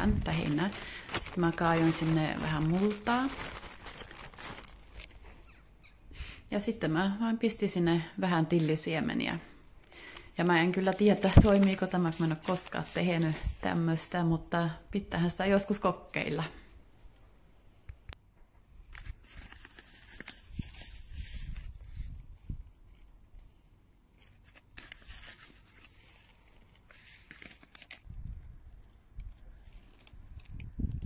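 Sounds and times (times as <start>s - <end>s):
dry leaves rustling and crackling: 0.0s - 5.2s.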